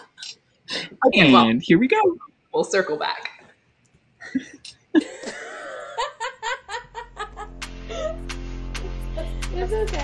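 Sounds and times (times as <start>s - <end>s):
person laughing: 4.2s - 8.2s.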